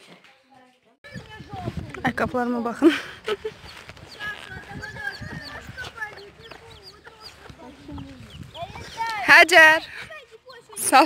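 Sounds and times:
footsteps on a dirt path: 0:01.0 - 0:11.0.

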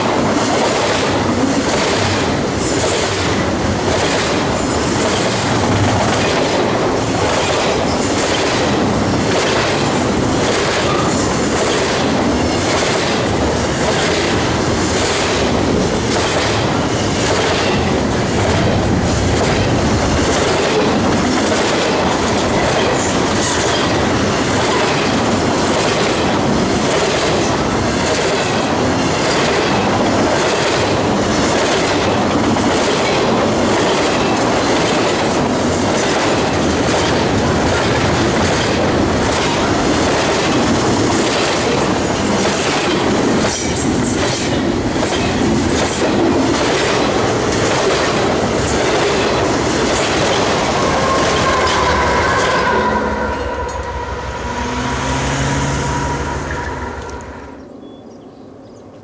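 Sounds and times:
wheels clacking over rail joints: 0:00.0 - 0:54.0
freight train passing: 0:00.0 - 0:59.0.

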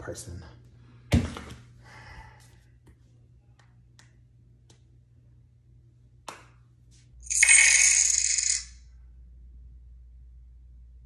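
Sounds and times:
loud metallic jingle: 0:07.3 - 0:08.7.

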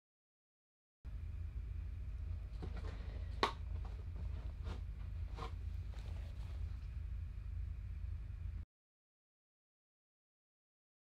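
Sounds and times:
steady low hum: 0:01.1 - 0:08.7.

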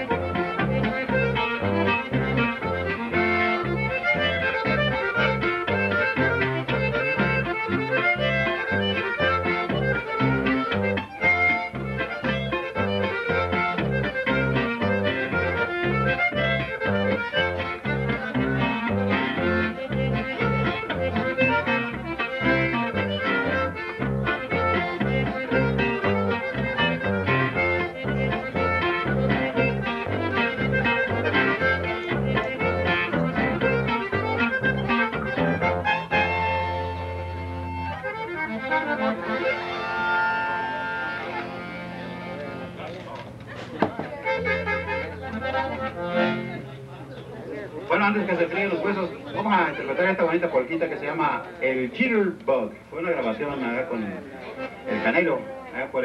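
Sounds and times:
button accordion melody: 0:00.0 - 0:47.2, 0:47.9 - 0:52.4, 0:53.2 - 0:56.0
electric bass: 0:00.0 - 0:47.3
guitar strumming: 0:00.0 - 0:51.6, 0:54.4 - 0:56.0.

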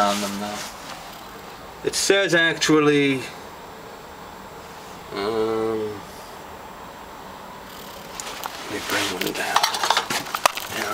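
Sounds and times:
metal tins clinking and rattling: 0:09.2 - 0:10.9.

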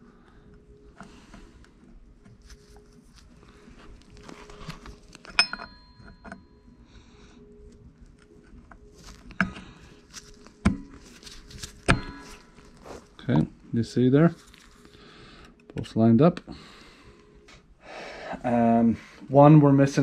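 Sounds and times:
handling noise: 0:08.1 - 0:13.6.

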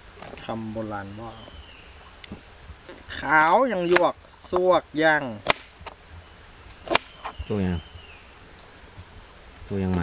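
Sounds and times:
insects chirring: 0:00.0 - 0:10.0
sharp chopping strikes: 0:05.4 - 0:06.0, 0:06.8 - 0:07.4.

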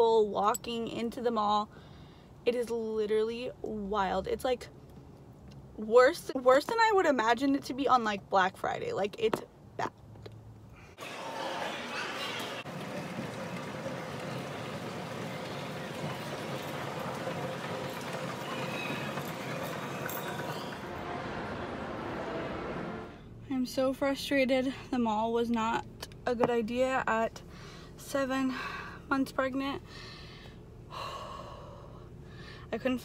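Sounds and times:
indistinct crowd noise: 0:11.0 - 0:22.4
escalator running: 0:11.0 - 0:23.2.

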